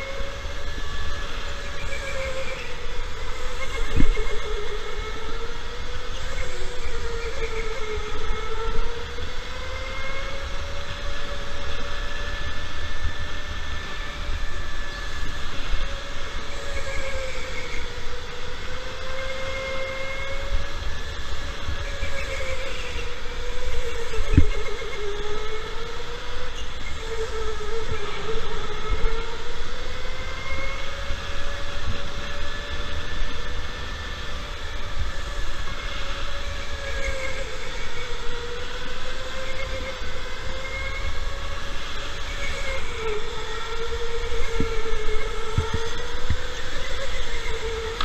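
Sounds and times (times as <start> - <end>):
electric go-kart motor whining: 0.0 - 48.0.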